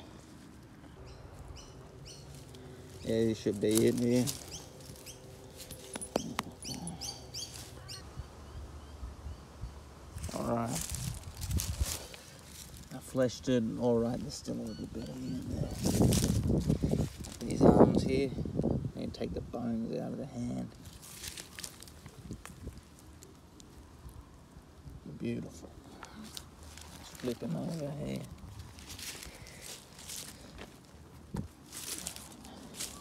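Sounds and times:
birds chirping: 0.0s - 18.3s, 25.1s - 33.0s
soft handling clicks and rustles: 3.6s - 6.7s.

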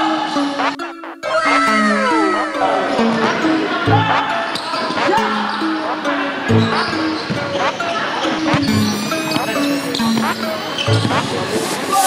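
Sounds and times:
background music: 0.0s - 12.0s
sneakers squeaking on court: 6.6s - 11.6s.

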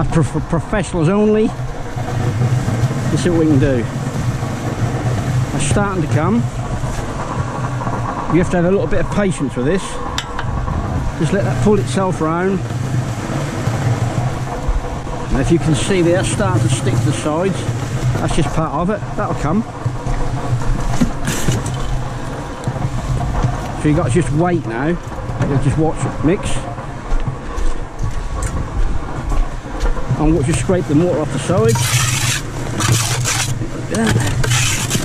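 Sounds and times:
cement mixer running: 0.0s - 35.0s.

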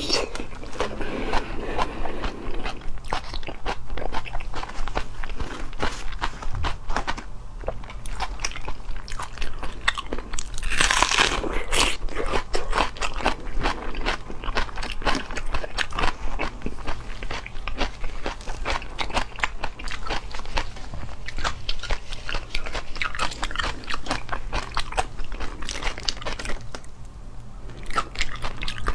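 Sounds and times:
person chewing crisp food: 0.2s - 26.9s, 27.6s - 28.9s.

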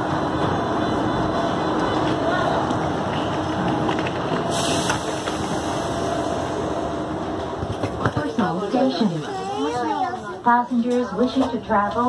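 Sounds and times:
bustle of passengers: 0.0s - 12.0s.

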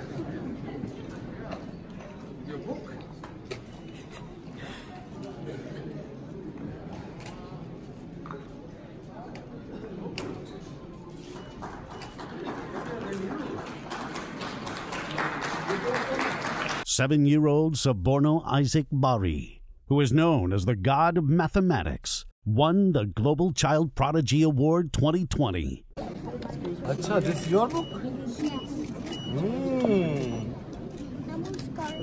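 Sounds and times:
audience applauding: 11.4s - 16.8s
indistinct voices: 27.8s - 30.7s.

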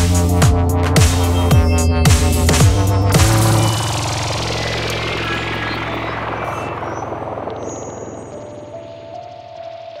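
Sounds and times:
held low bass note: 1.4s - 9.1s
noisy rushing wash: 3.2s - 9.0s.

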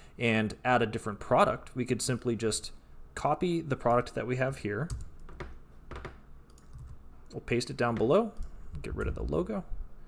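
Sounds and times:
computer keyboard keystrokes: 4.9s - 7.0s.

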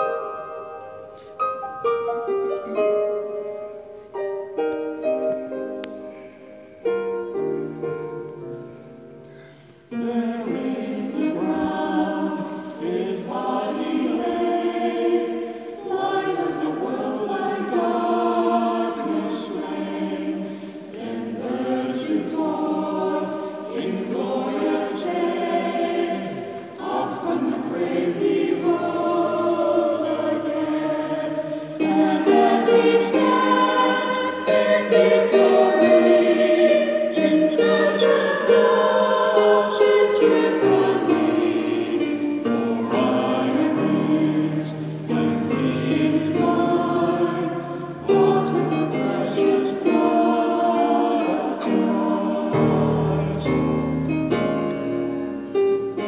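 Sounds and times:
mixed choir singing: 0.0s - 4.1s, 9.0s - 56.0s.

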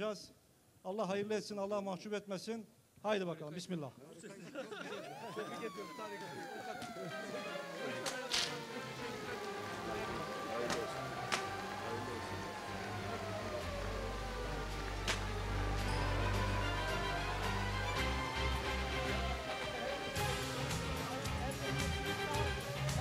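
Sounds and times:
siren-like sweeping tones: 4.8s - 23.0s
music with deep bass: 7.0s - 23.0s
sharp cracks: 14.8s - 15.5s.

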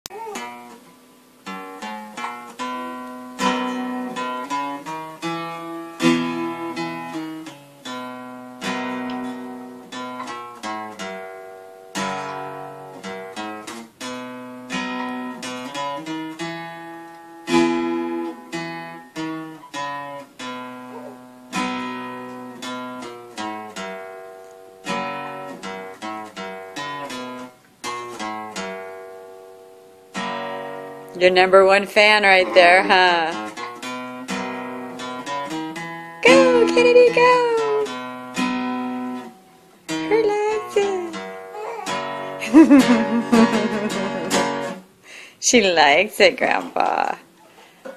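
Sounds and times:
acoustic guitar picking: 0.3s - 45.0s.

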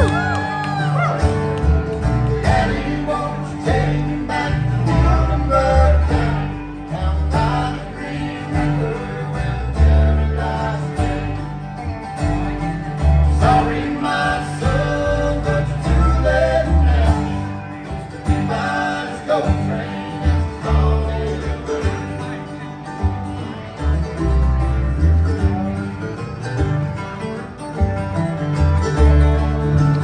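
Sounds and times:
acoustic guitar: 0.0s - 30.0s
dobro: 0.0s - 30.0s
mandolin: 0.0s - 30.0s
upright bass: 0.0s - 30.0s.

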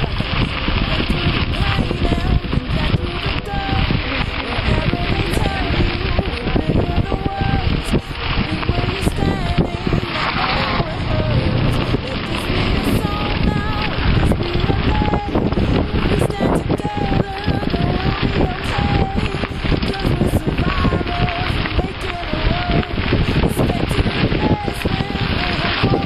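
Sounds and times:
bike rattling on gravel: 0.0s - 26.0s
high wavering tones: 0.0s - 26.0s
wind rushing over microphone: 0.0s - 26.0s.

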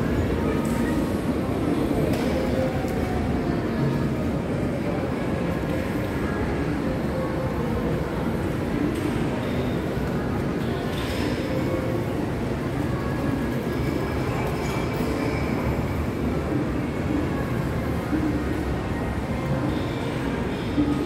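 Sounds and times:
faint background music: 0.0s - 21.0s.

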